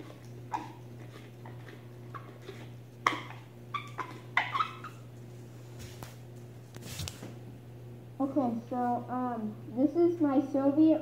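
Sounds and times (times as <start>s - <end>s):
steady low hum: 0.0s - 11.0s
rubber gas mask squeaks: 2.2s - 5.1s.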